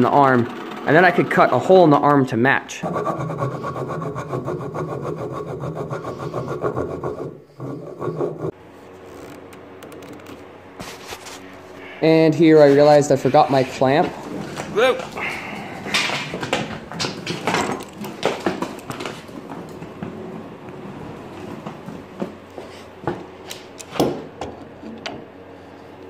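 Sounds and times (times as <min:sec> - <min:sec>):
clamp knocking and clattering: 0:16.0 - 0:19.1.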